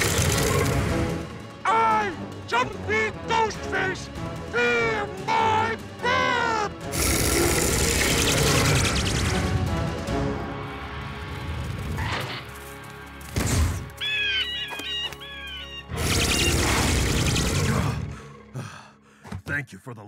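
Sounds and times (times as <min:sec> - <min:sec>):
dramatic cartoon music: 0:00.0 - 0:19.2
creature snarling: 0:06.8 - 0:09.4, 0:15.9 - 0:18.1.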